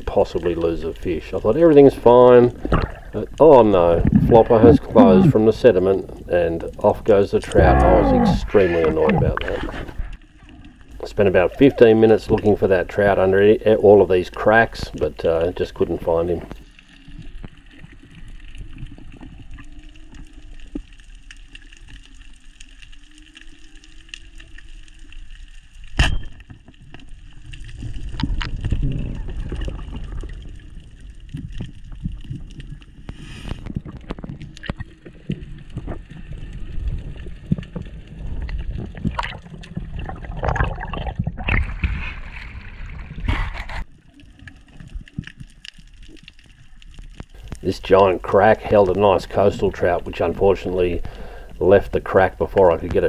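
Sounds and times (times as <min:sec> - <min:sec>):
underwater churning rumble: 0:00.7 - 0:16.6, 0:27.6 - 0:33.0, 0:33.7 - 0:43.8.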